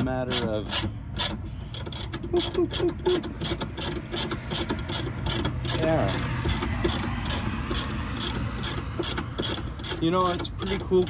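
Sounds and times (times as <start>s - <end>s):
socket ratchet clicking: 0.3s - 11.0s.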